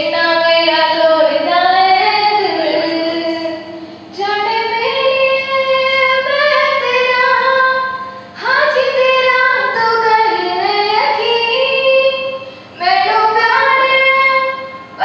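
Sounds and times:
girl singing into a microphone: 0:00.0 - 0:15.0
singer breathing: 0:12.4 - 0:12.8.

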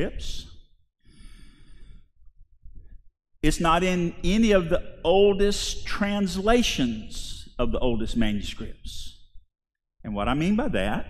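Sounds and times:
man breathing out: 0:01.0 - 0:02.1.

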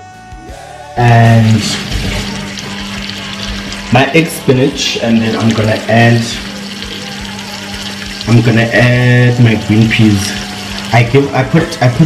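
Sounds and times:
food sizzling in a pan: 0:00.6 - 0:12.0.

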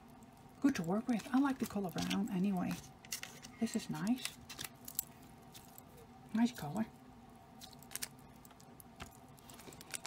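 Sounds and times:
plastic packet clicks and crinkles: 0:01.1 - 0:05.8, 0:07.6 - 0:10.0.

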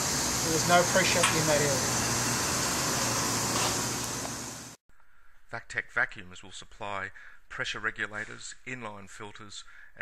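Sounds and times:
machinery humming: 0:00.0 - 0:04.8
steady hiss: 0:00.0 - 0:04.8.

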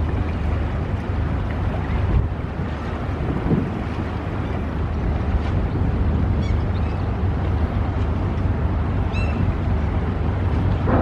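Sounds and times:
ship engine rumble: 0:00.0 - 0:11.0
wind buffeting microphone: 0:00.0 - 0:11.0.

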